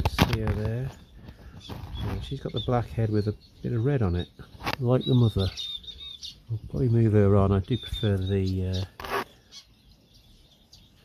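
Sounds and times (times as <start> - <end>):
finches chirping faintly: 0.1 - 11.0.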